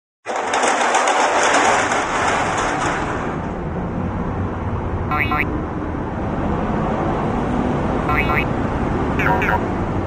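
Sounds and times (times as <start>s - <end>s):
metal roller shutter rattling: 0.3s - 3.9s.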